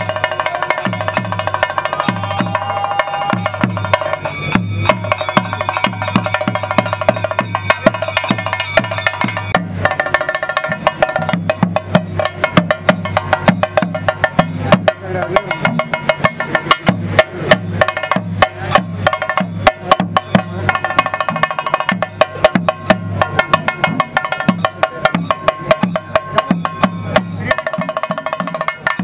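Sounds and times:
low drum strokes: 0.0 - 29.0
sharp high percussion strokes: 0.0 - 29.0.

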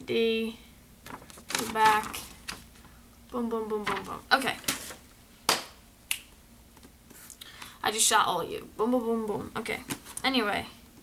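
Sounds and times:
woman's voice: 1.5 - 2.3, 3.3 - 4.7, 7.8 - 10.8.

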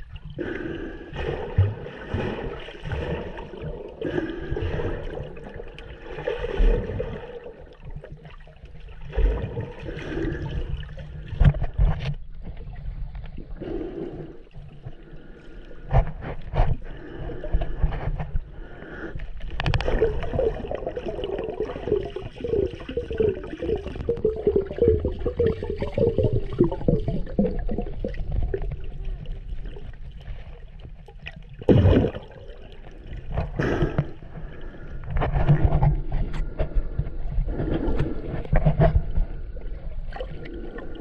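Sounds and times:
water gurgling and sloshing: 0.0 - 41.0.

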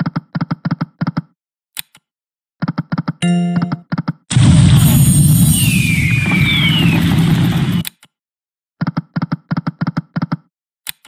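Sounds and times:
falling whistles: 4.7 - 7.8.

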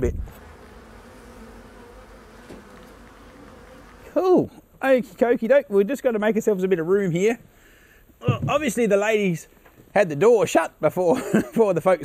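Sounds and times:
honey bees buzzing: 0.2 - 4.8.

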